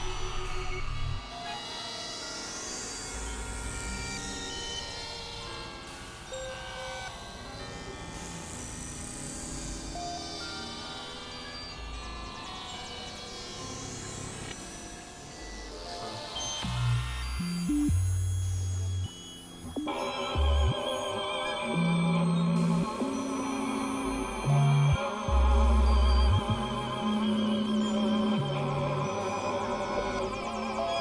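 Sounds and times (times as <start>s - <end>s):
electronic drone music: 19.6s - 31.0s.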